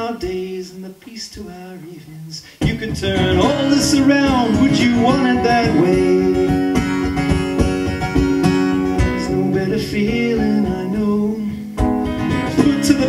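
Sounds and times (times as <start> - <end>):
acoustic guitar strumming: 1.3 - 13.0.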